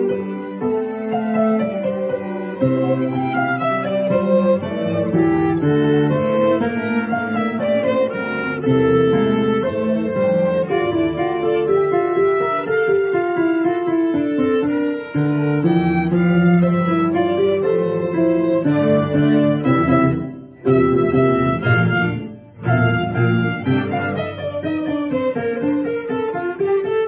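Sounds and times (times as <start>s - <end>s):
violin playing a dance tune: 0.0s - 27.0s.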